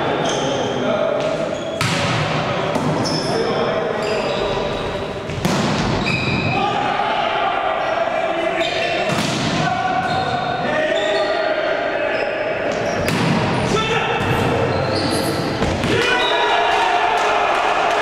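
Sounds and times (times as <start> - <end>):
players calling: 0.0 - 18.0.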